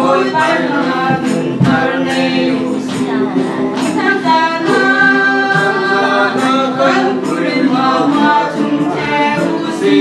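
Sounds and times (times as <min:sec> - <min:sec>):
group singing a hymn: 0:00.0 - 0:10.0.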